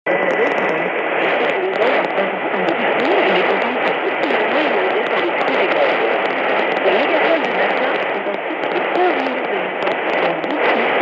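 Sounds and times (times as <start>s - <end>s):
radio static and hiss: 0.0s - 11.0s
voice over radio: 0.0s - 11.0s.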